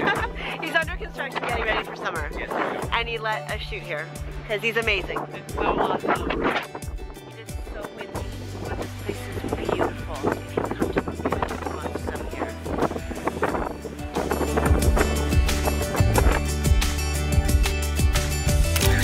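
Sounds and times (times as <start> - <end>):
background music with beat: 0.0 - 19.0.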